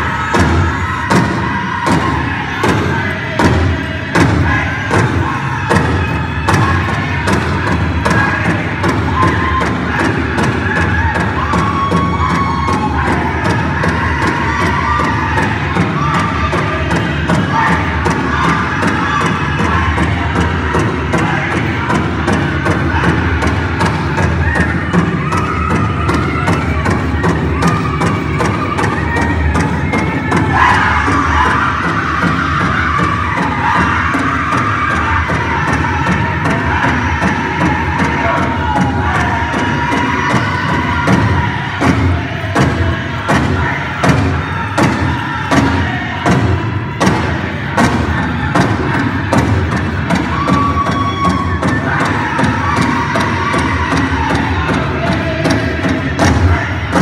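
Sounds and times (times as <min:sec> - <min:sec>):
crowd noise: 0:00.0 - 0:57.0
drum group singing: 0:00.0 - 0:57.0
steady beat on large drum: 0:00.0 - 0:57.0.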